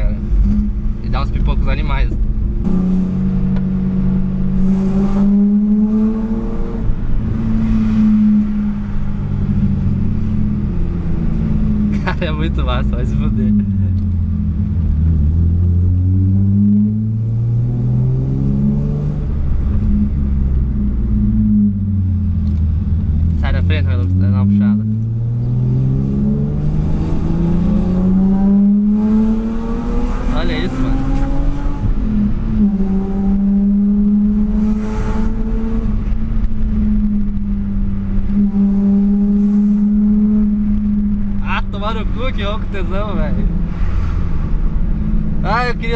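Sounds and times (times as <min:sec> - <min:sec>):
car engine accelerating: 0:00.0 - 0:45.9.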